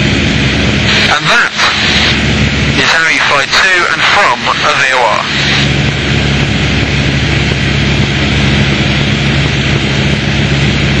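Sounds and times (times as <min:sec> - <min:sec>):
airplane engine and propeller: 0:00.0 - 0:11.0.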